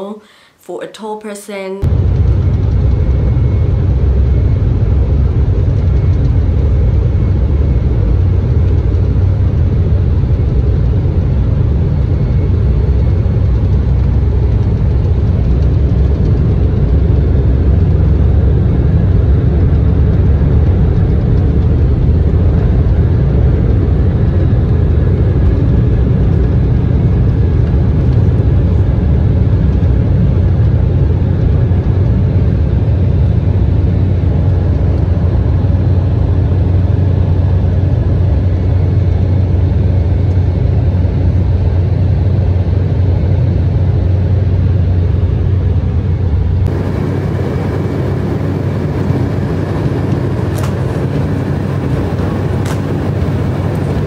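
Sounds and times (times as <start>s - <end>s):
faint high whine: 1.8s - 26.6s, 44.1s - 54.0s
jet engine roar: 1.8s - 54.0s.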